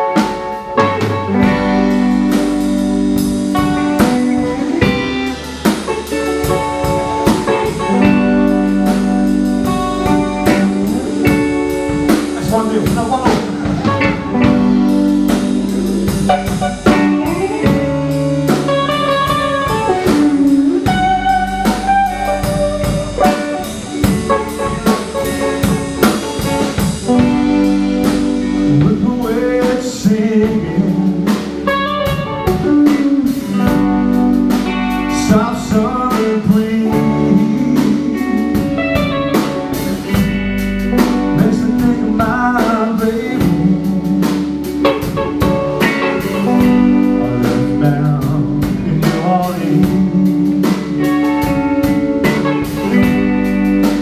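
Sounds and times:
drum kit beat: 0.0s - 54.0s
electric bass: 0.0s - 54.0s
electric guitars: 0.0s - 54.0s.

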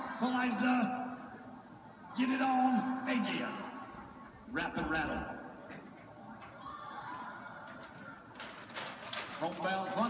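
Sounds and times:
arena sound from television: 0.0s - 10.0s
television voice: 0.0s - 10.0s.

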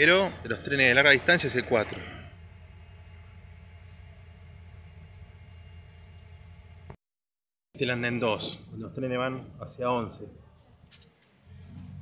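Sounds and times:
low outdoor rumble: 0.0s - 7.0s.

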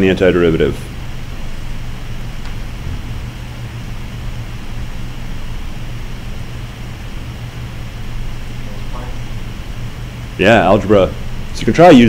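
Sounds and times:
room noise hiss: 0.0s - 12.0s
steady low hum: 0.0s - 12.0s.

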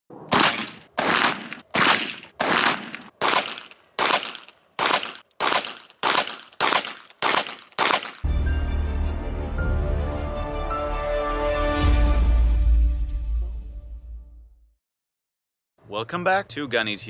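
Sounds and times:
pistol shots: 0.3s - 8.3s.

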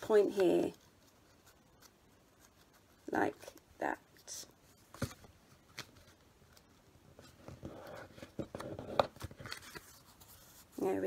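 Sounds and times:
paper folding and rustling: 4.6s - 10.9s.

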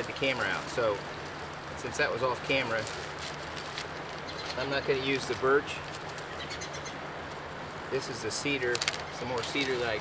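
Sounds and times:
steady background hiss: 0.0s - 10.0s
plastic bag crinkling: 2.4s - 4.6s.

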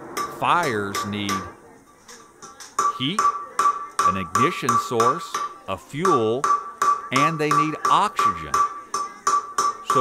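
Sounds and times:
hammer striking metal: 0.1s - 1.5s, 2.5s - 10.0s.

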